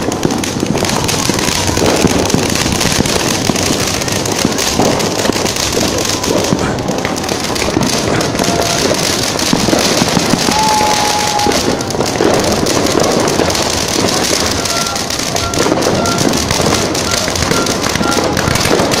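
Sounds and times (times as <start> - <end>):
fireworks crackling hiss: 0.0 - 19.0.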